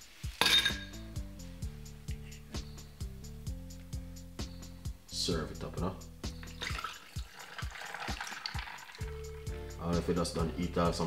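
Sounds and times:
juice pouring over ice: 0:06.4 - 0:09.9.

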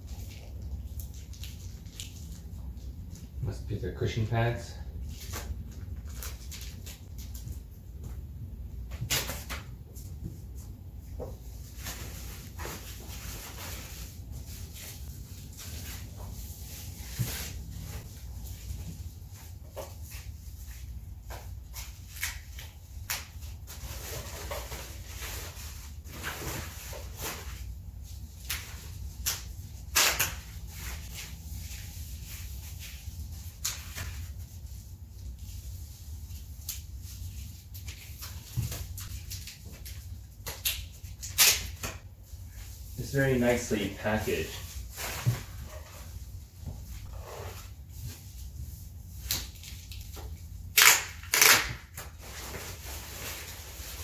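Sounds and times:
plastic wrap rustling: 0:04.4 - 0:08.0, 0:11.3 - 0:54.0.

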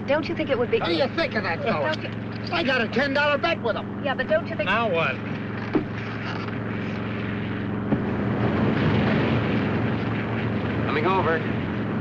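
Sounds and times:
propeller engines droning: 0:00.0 - 0:12.0.

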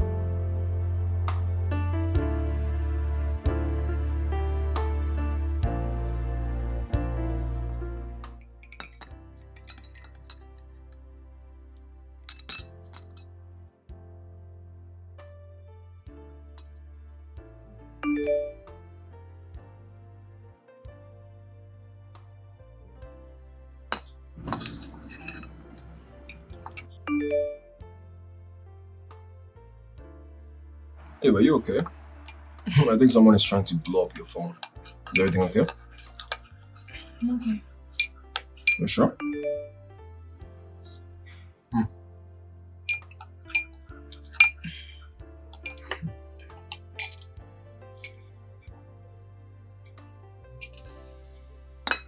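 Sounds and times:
soft background music: 0:00.0 - 0:52.0
cutlery and dishes clinking: 0:08.6 - 0:10.6, 0:12.3 - 0:13.2, 0:23.9 - 0:26.9, 0:31.8 - 0:37.2, 0:37.9 - 0:39.0, 0:42.9 - 0:44.9, 0:45.6 - 0:47.3, 0:48.0 - 0:48.2, 0:50.6 - 0:51.2
phone alert notes: 0:27.1 - 0:27.7.

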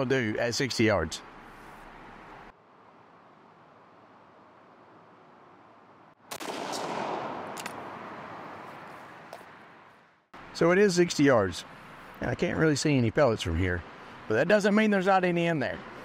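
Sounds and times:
shotgun shot: 0:06.3 - 0:07.8.

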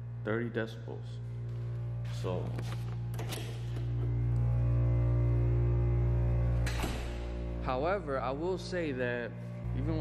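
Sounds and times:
air compressor humming: 0:00.0 - 0:10.0
background music: 0:00.0 - 0:10.0.

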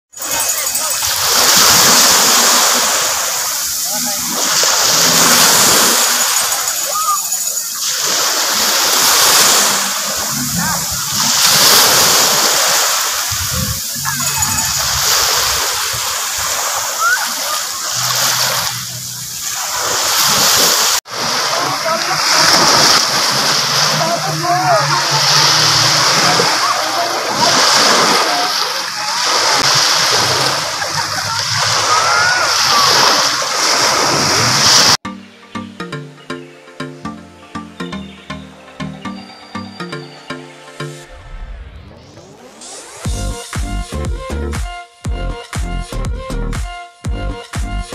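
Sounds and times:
small waves breaking on beach: 0:00.1 - 0:35.0.

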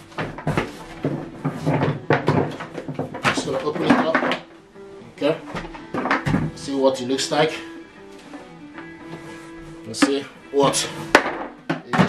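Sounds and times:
hard plastic knocks and clatters: 0:00.0 - 0:04.5, 0:05.4 - 0:06.7, 0:11.1 - 0:12.0.

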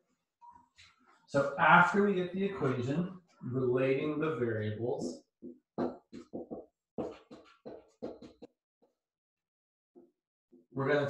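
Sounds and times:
marker squeaking on whiteboard: 0:05.8 - 0:08.5.

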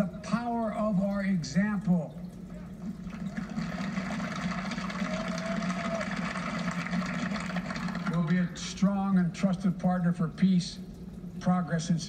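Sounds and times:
audience applauding on television: 0:03.0 - 0:08.6.

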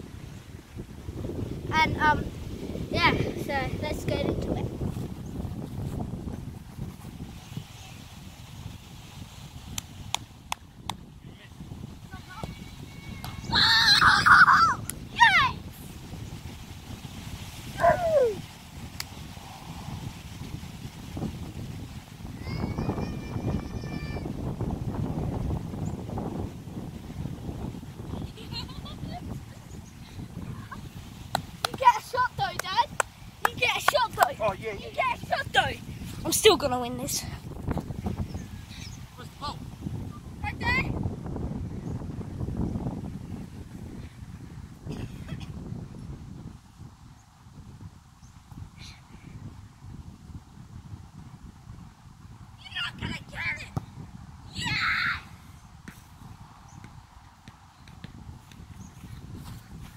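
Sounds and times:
wind rumble on microphone: 0:00.0 - 0:59.9
excited voices calling out: 0:12.1 - 0:15.7, 0:17.8 - 0:18.4, 0:31.7 - 0:37.2, 0:54.5 - 0:55.3
boy yelling: 0:12.2 - 0:15.7, 0:17.8 - 0:18.4, 0:22.4 - 0:24.4, 0:31.7 - 0:37.2, 0:54.5 - 0:55.3
sharp claps or knocks: 0:31.3 - 0:31.8, 0:32.5 - 0:34.4.

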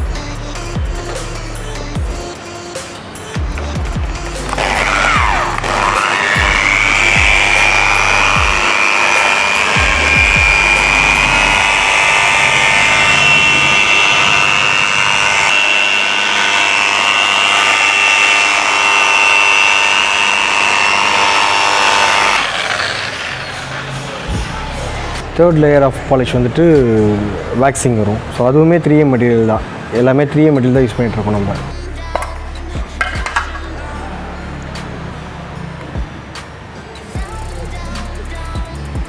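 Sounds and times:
background music with a beat: 0:00.0 - 0:12.1, 0:30.8 - 0:39.0
electric polisher whining: 0:03.0 - 0:25.5.

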